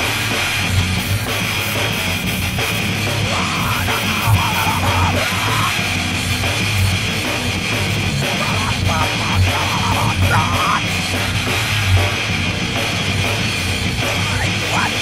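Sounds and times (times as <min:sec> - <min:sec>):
heavy rock music: 0:00.0 - 0:15.0.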